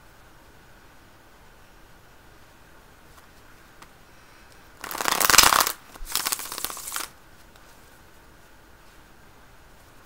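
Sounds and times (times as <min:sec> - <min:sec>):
cards being shuffled: 0:04.8 - 0:07.1.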